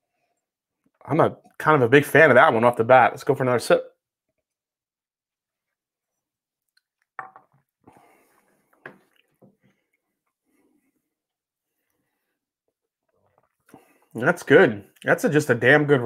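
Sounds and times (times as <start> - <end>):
man sipping and tasting: 4.2 - 14.2.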